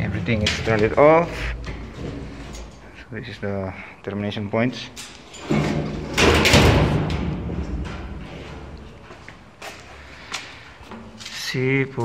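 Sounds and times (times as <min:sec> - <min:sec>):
metal panel door thud: 0:05.5 - 0:08.2.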